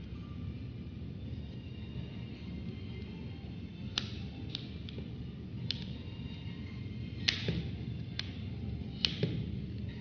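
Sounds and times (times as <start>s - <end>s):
plastic clips snapping loose: 3.9s - 6.0s, 7.2s - 9.5s.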